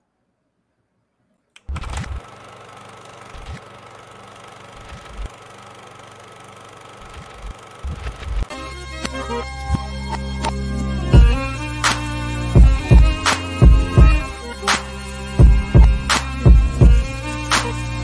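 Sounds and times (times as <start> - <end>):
glitchy static hiss: 7.0 - 8.6
electronic music with heavy bass: 7.0 - 18.0.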